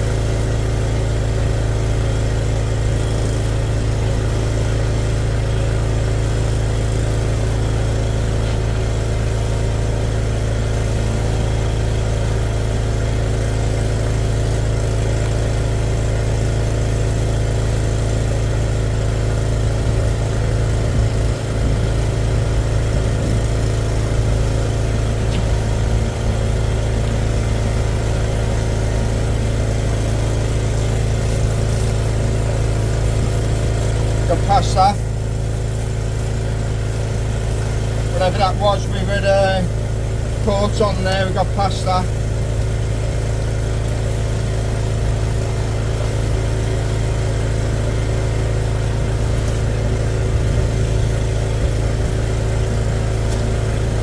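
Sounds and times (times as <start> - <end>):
drain jetter engine running: 0.0 - 54.0.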